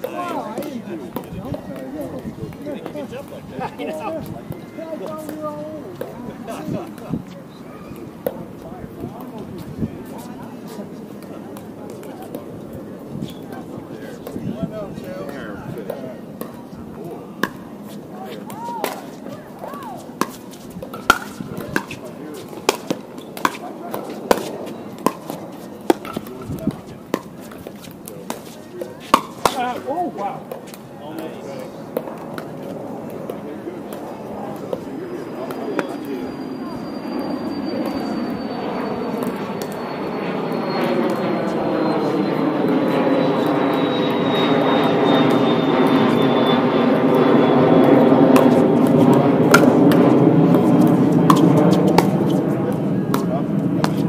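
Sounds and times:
airplane flying over: 0:03.4 - 0:54.0.

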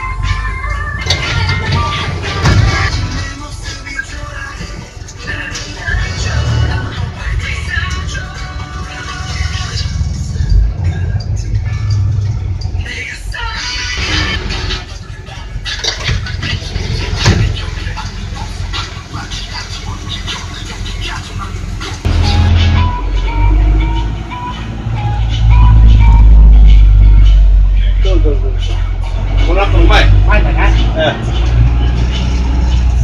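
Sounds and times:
bus engine rumble: 0:00.0 - 0:33.0.

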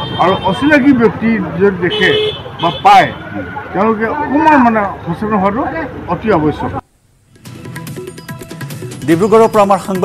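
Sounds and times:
road traffic noise: 0:00.0 - 0:10.0
man speaking: 0:08.9 - 0:10.0.

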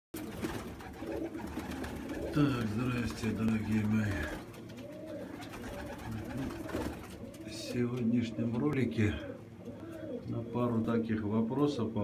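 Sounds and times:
pigeons cooing: 0:00.2 - 0:10.9.

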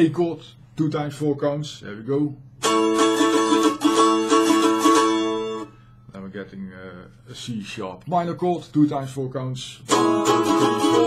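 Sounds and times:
mandolin strumming chord: 0:02.6 - 0:05.9, 0:09.9 - 0:11.0.

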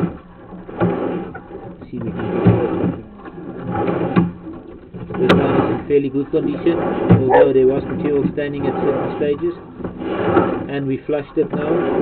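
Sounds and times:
push rod rattling and scraping: 0:00.0 - 0:12.0.

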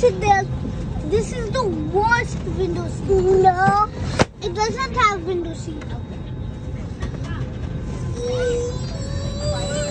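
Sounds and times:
airliner cabin drone: 0:00.0 - 0:09.9
faint child's voice: 0:07.3 - 0:09.9.

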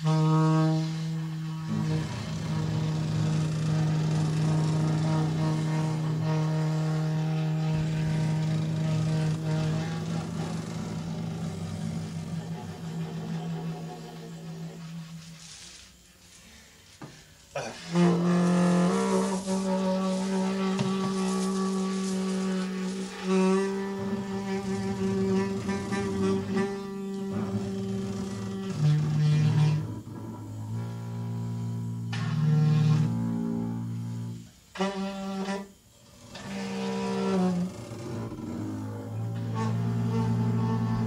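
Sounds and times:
alto saxophone: 0:00.0 - 0:16.0, 0:17.5 - 0:41.0
double bass: 0:00.0 - 0:16.1, 0:17.6 - 0:41.0.

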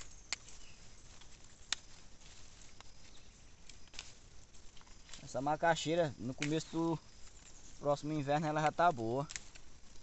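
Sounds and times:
rustling of vines and leaves: 0:00.0 - 0:10.0
pods snapping off stems: 0:00.3 - 0:00.6, 0:01.2 - 0:02.0, 0:03.6 - 0:04.2, 0:06.3 - 0:06.8, 0:08.6 - 0:09.7.

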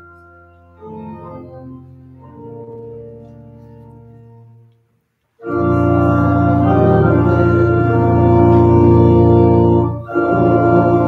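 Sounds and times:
church organ chords: 0:00.0 - 0:04.8, 0:05.4 - 0:11.0.

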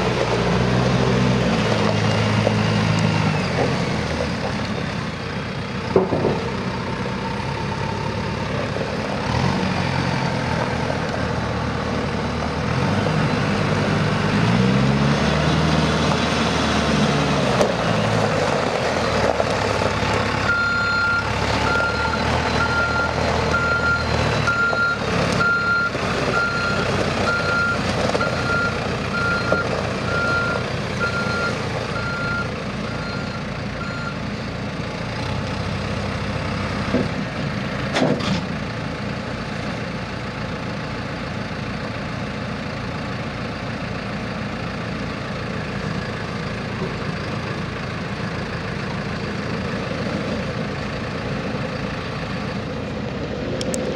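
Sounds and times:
diesel backhoe engine running: 0:00.0 - 0:53.9
reversing alarm beeping: 0:20.5 - 0:34.2.

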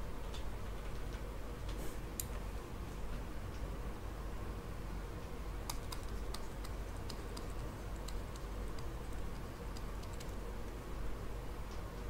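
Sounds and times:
steady low hum: 0:00.0 - 0:12.0
computer clicks: 0:05.7 - 0:10.4.

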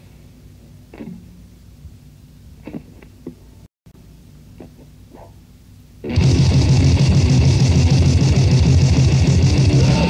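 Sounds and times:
grind metal band playing: 0:06.1 - 0:10.0.

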